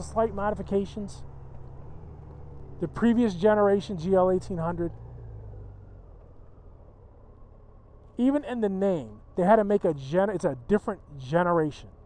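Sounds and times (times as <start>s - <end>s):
vehicle passing: 0.0s - 10.2s.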